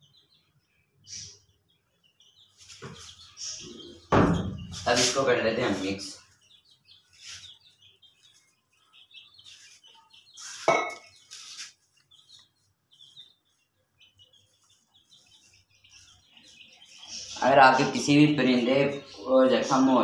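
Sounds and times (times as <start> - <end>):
bird chirps: 0.0 - 20.0.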